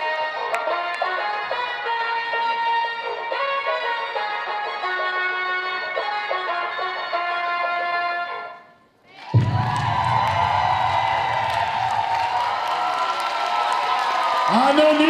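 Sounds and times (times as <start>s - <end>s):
audience cheering and screaming: 9.1s - 15.0s.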